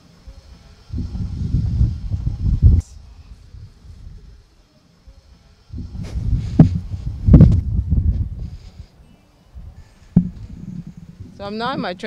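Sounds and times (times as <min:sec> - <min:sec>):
wind buffeting microphone: 0:00.9 - 0:04.4, 0:05.7 - 0:08.9, 0:09.6 - 0:12.0.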